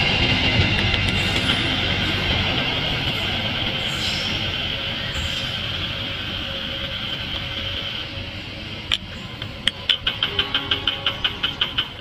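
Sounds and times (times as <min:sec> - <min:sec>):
train wheels on rails: 0:00.0 - 0:12.0.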